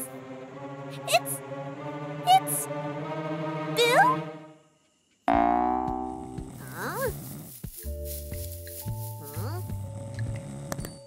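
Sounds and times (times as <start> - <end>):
soft cartoon music: 0.0 - 11.0
cartoon dinosaur groan: 6.1 - 7.3.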